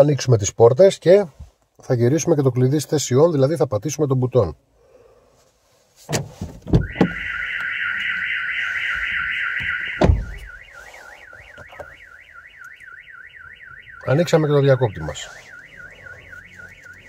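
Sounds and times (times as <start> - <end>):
thump: 6.1 - 7.2, 10.0 - 10.5
car alarm siren: 6.7 - 17.0.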